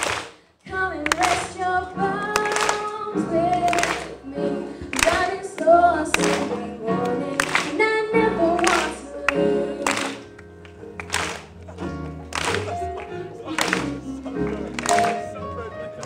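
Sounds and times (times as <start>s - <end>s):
woman singing into microphone: 0.6s - 10.3s.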